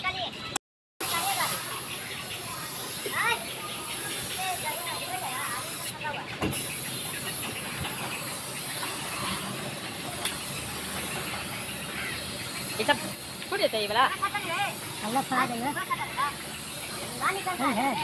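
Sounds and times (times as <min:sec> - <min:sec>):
paint spray gun hissing: 0:01.0 - 0:18.0.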